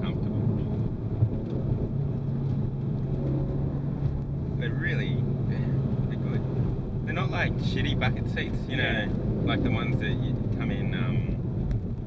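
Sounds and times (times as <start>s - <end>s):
car engine cruising: 0.0s - 12.0s
road noise: 0.0s - 12.0s.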